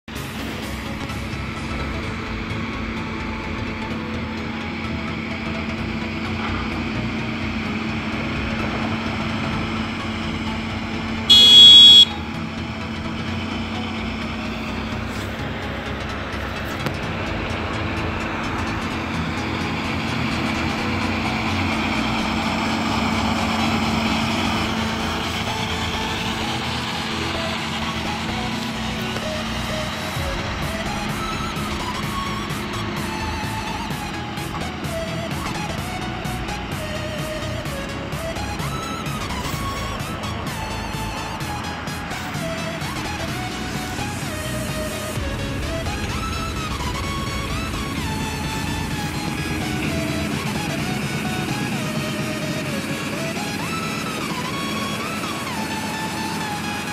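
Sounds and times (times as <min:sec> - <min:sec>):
tractor engines running: 0:00.0 - 0:56.9
horn toot: 0:11.2 - 0:12.4.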